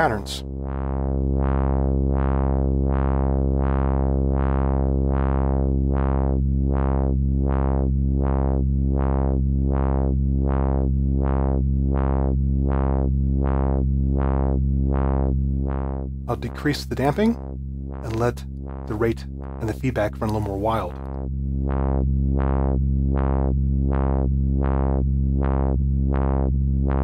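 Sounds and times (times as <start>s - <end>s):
low synthesizer tone filter sweeps: 0.0s - 27.0s.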